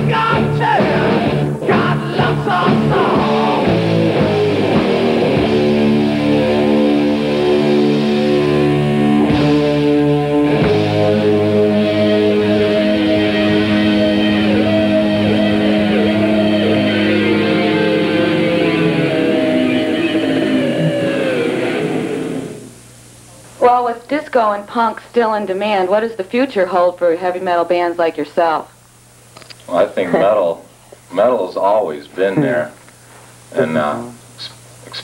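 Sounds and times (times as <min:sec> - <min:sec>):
doom metal song: 0:00.0 - 0:22.6
distorted electric guitars chord: 0:00.0 - 0:22.9.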